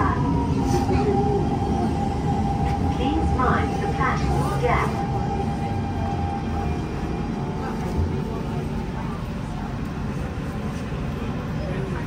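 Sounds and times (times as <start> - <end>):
train interior low rumble: 0.0 - 12.0.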